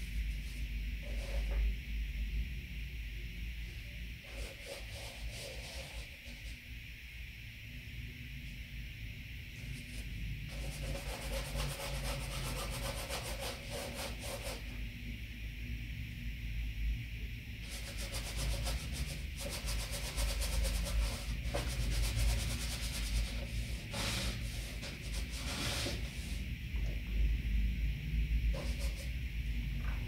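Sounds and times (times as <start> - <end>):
brush scratching on canvas: 4.3 - 6.5, 9.9 - 14.7, 17.7 - 26.4, 28.5 - 29.1.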